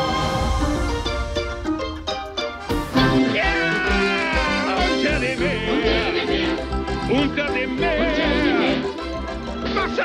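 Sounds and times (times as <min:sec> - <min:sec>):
upbeat band music: 0:00.8 - 0:09.0
cartoon male voice singing: 0:03.3 - 0:08.9.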